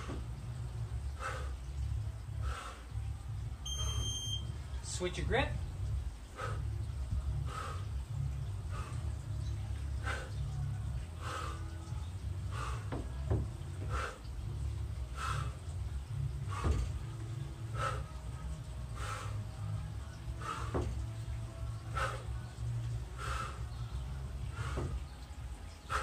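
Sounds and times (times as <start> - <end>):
low steady rumble: 0.0 - 26.0.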